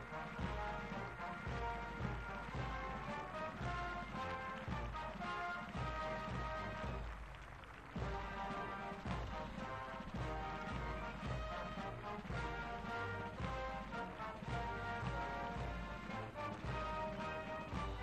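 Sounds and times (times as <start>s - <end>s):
military band playing: 0.0s - 18.0s.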